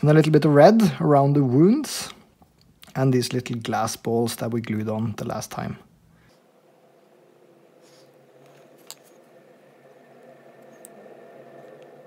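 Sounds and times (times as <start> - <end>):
steady hum of held tones: 3.6 - 12.0.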